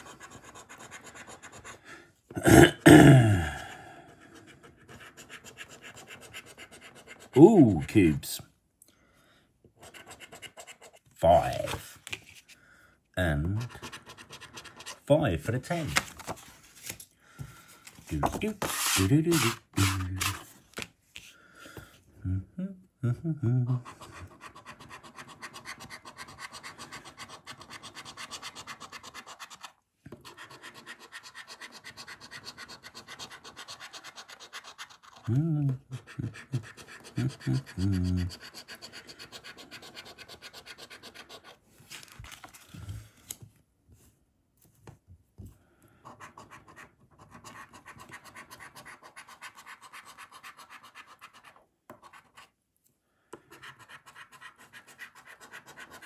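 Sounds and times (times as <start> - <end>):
coin scraping scratchcard: 18.6 - 20.4.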